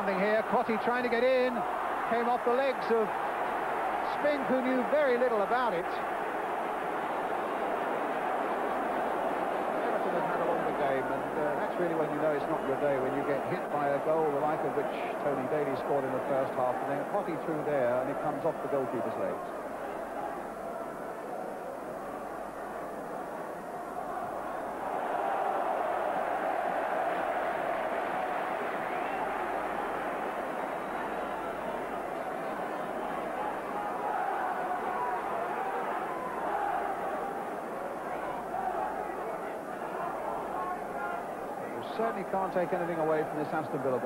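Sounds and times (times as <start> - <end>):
stadium crowd voices: 0.0 - 44.0.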